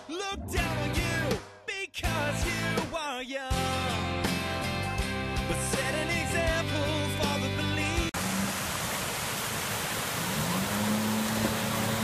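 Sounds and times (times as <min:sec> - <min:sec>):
song with singing: 0:00.0 - 0:04.2, 0:04.8 - 0:08.2
fountain water splashing into pool: 0:08.2 - 0:12.0.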